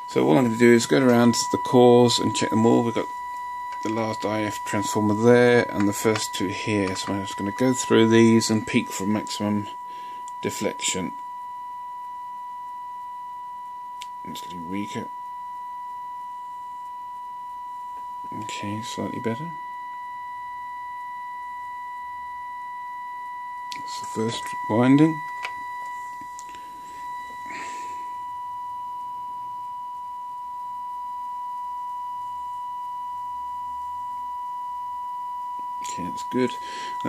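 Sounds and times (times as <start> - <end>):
steady test tone from loudspeaker: 0.0 - 37.0.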